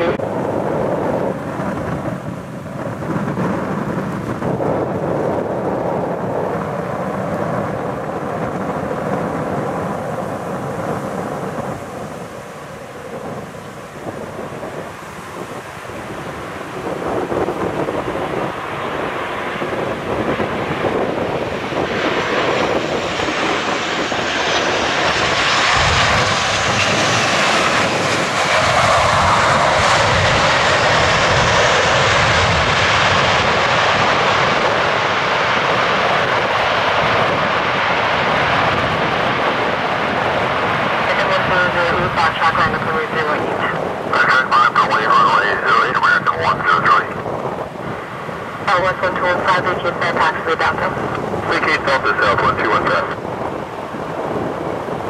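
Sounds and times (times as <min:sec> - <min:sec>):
jet engines whining: 0:00.0 - 0:55.0
jet plane landing: 0:00.0 - 0:55.0.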